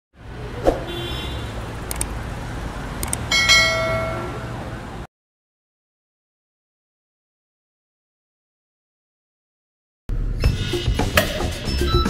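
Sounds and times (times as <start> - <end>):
quick double clicks: 1.8 - 2.1, 3.0 - 3.3
bright bell-like chime: 3.3 - 4.4.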